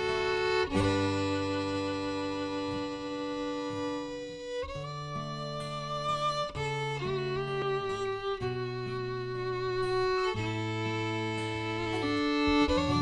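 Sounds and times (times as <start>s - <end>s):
acoustic guitar chords: 0.0s - 13.0s
fiddle playing slow air: 0.0s - 13.0s.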